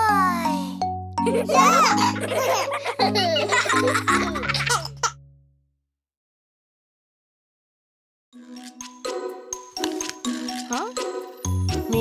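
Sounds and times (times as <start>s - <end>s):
cartoon children's song music: 0.0s - 5.0s, 8.4s - 12.0s
small child giggling: 1.2s - 5.2s.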